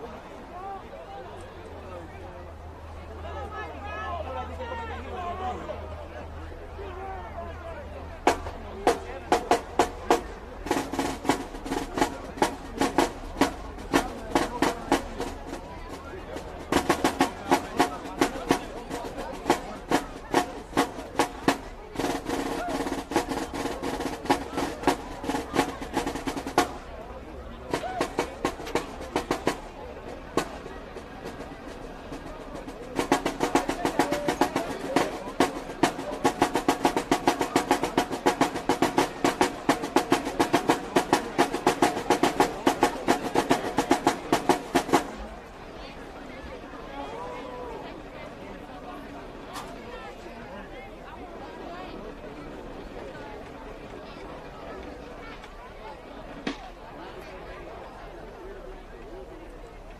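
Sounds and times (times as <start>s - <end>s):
snare drumline cadence: 8.2s - 27.0s, 27.6s - 45.3s.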